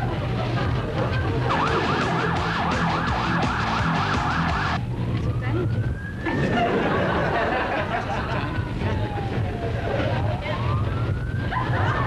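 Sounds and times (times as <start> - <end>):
police car siren: 1.0 - 12.0.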